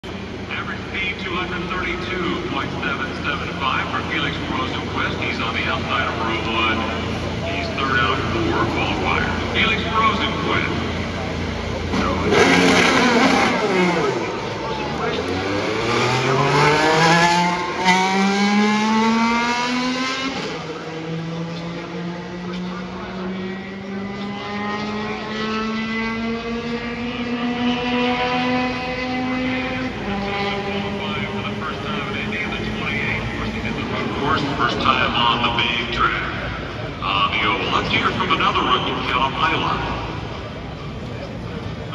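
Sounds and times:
race car engine accelerating: 0.0 - 41.9.

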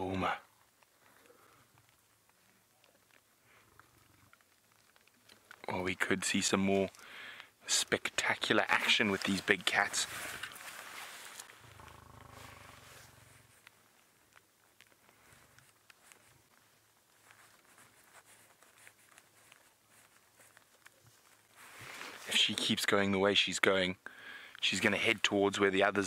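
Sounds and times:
lion growling: 11.6 - 13.6.

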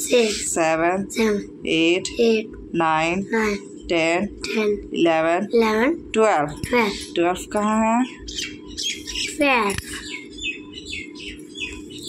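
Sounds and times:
steady low hum: 0.0 - 12.0
small birds chirping: 0.1 - 0.5, 6.7 - 12.0.

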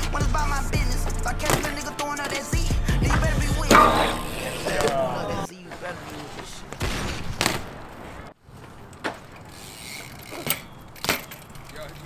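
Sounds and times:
bike tyres landing on concrete: 1.4 - 2.4, 3.1 - 5.1, 6.7 - 7.8, 8.6 - 9.4, 10.3 - 12.0
bike hub ticking: 3.0 - 4.8, 8.8 - 12.0
sharp knock: 3.7 - 4.5.

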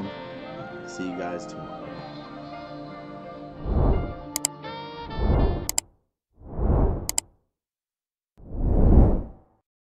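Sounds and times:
whoosh sound effect: 3.6 - 4.2, 6.4 - 7.2.

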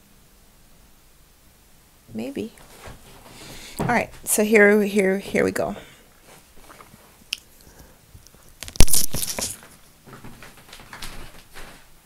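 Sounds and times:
crunchy rustle: 2.6 - 4.4, 6.1 - 12.0.

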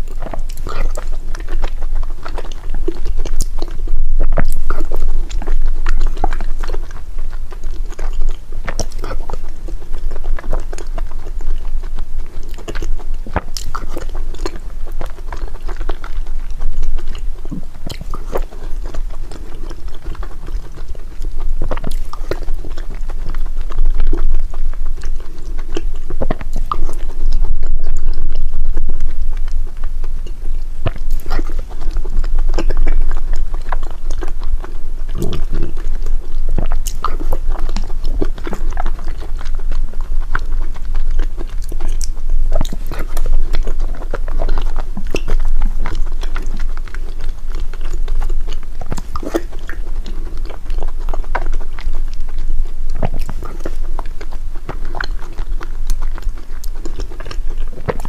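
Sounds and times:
mouth clicks and smacks: 0.0 - 58.0
person chewing sticky food: 0.0 - 58.0.

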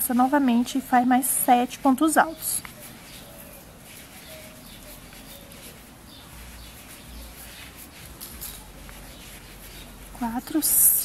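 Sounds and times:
crochet hook rubbing twine: 0.0 - 11.0.

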